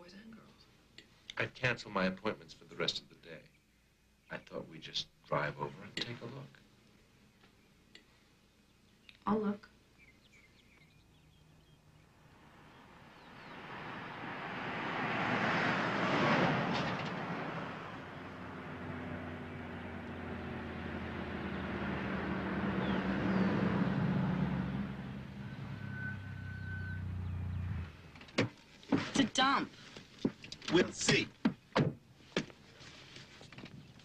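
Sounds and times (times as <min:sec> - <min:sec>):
car driving past: 0:11.9 - 0:28.4.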